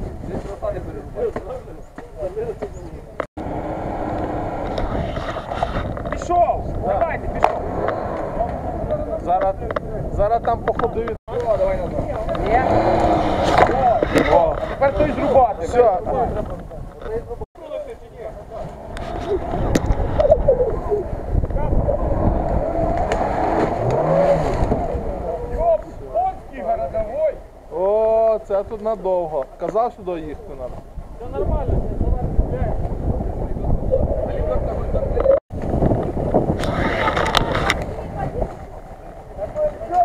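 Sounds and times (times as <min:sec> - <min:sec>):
car engine revving hard: 0:03.4 - 0:05.0, 0:07.4 - 0:08.8, 0:12.4 - 0:14.0, 0:22.0 - 0:25.4.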